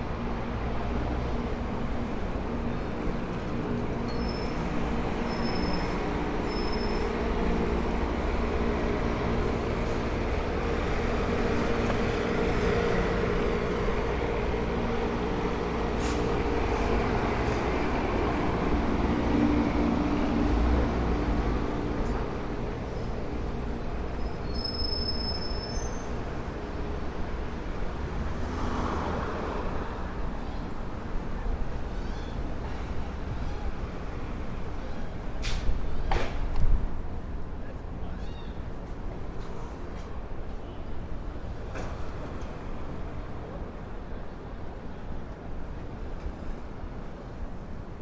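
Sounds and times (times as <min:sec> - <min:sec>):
city street traffic: 0:00.0 - 0:48.0.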